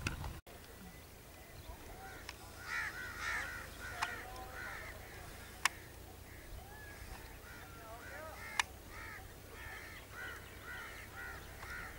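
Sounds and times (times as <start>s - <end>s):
birds calling: 0.0s - 11.9s
sharp clicks: 3.9s - 4.5s, 5.5s - 6.0s.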